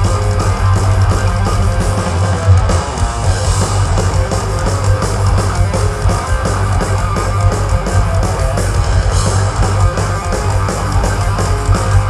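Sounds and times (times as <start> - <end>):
thrash metal band playing: 0.0 - 12.0.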